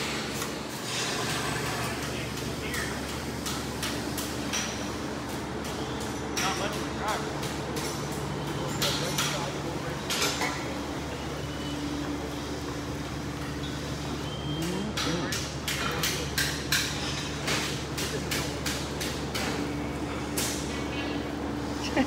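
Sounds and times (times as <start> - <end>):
low mechanical hum: 0.0 - 22.0
sharp knocks and clanks: 15.0 - 21.2.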